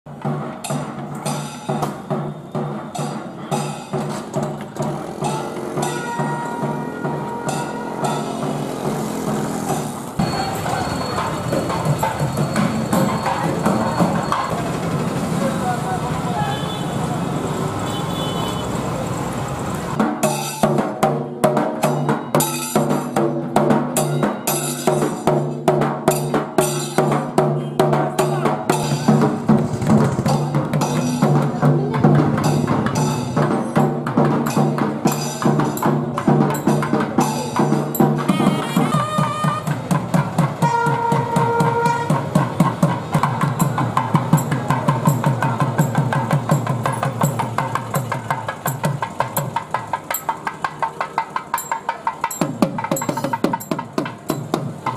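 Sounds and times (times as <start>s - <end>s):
drums beaten in fast rhythm: 0.1s - 16.7s, 19.8s - 54.9s
held higher notes: 4.8s - 9.1s.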